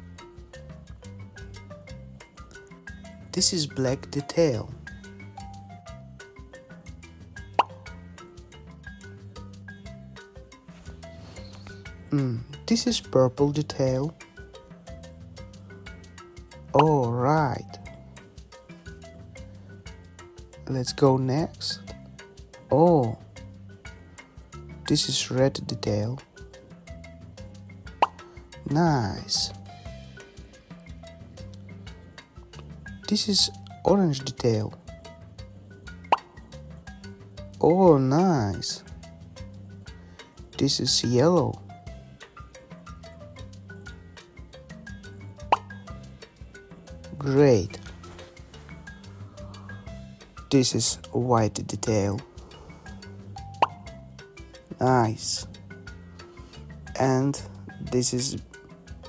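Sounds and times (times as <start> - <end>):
light mallet background music: 0.0 - 59.0
cartoon bloop sound effect: 53.6 - 53.8.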